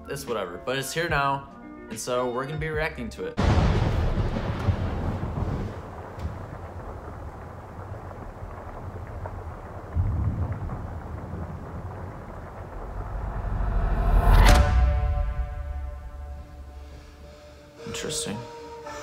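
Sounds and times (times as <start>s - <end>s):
deep cinematic hit: 3.4s - 6.0s, 9.9s - 17.7s.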